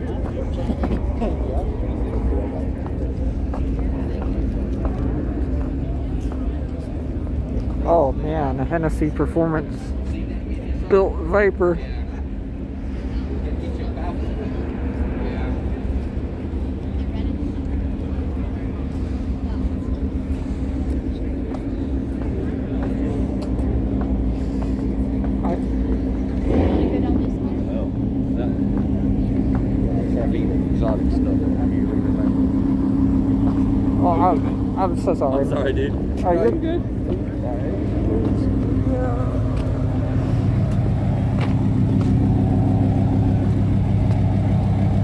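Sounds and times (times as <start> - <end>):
crowd chatter: 0.0 - 45.0
vehicle engine idling: 0.0 - 45.0.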